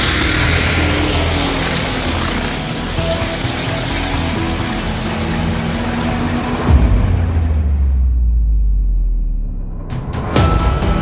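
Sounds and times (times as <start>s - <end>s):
dragster engine at full throttle: 0.0s - 6.8s
background music: 0.0s - 11.0s.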